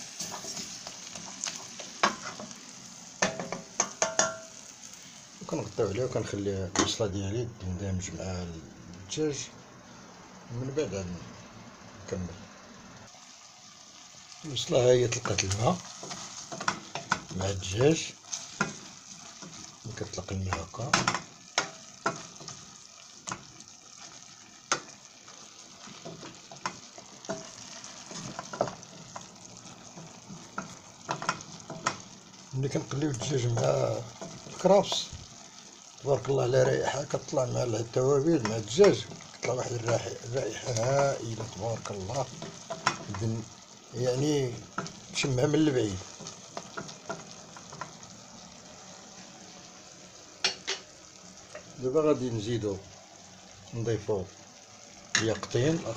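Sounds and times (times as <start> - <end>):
food sizzling in a pan: 0.0 - 55.9
stirring clicks: 15.1 - 19.8, 23.2 - 32.2, 32.8 - 35.4, 38.4 - 43.3.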